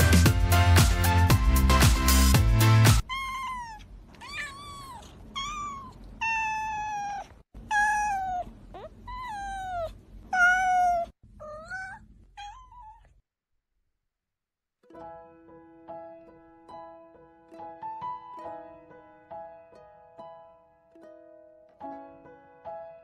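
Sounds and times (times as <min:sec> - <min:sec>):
cat meowing: 0:03.0 - 0:13.2.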